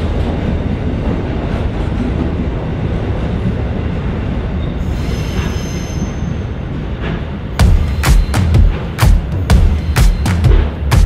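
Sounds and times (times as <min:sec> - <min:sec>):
freight train wheels rumbling: 0:00.0 - 0:11.0
high wheel squeal: 0:04.6 - 0:06.6.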